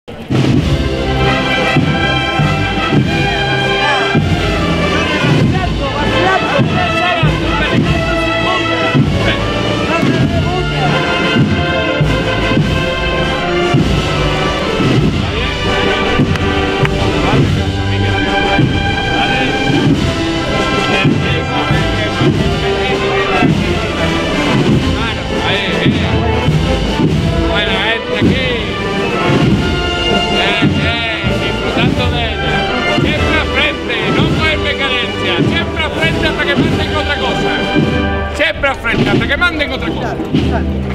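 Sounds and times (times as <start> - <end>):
bass drum strokes: 0.1 - 40.9
brass band playing slow march: 0.1 - 40.9.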